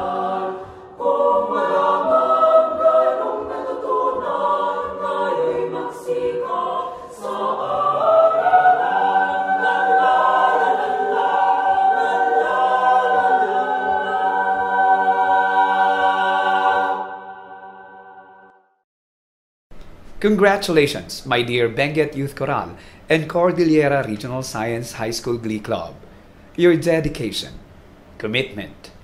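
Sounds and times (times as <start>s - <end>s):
choir singing a cappella: 0.0s - 18.5s.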